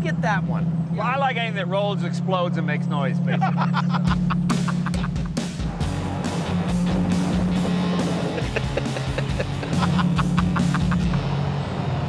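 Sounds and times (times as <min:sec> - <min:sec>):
car engine droning: 0:00.0 - 0:12.0
background music with quick beat: 0:04.1 - 0:11.2.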